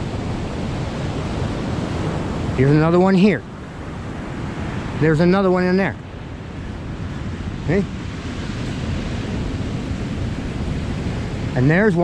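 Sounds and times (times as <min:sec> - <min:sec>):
surf washing on beach: 0:00.0 - 0:12.0
wind buffeting microphone: 0:00.0 - 0:12.0.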